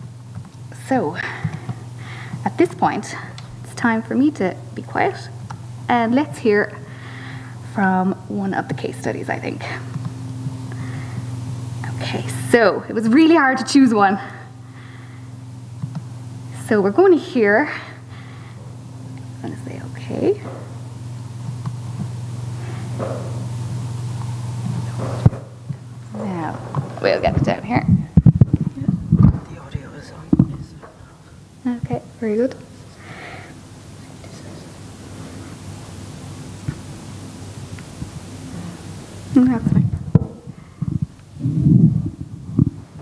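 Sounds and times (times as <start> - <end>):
low electrical hum: 0.0 - 43.0
microphone handling rumble: 22.8 - 31.2, 39.6 - 43.0.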